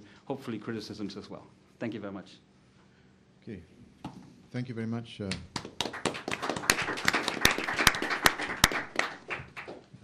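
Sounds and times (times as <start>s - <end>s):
audience applauding: 5.6s - 9.9s.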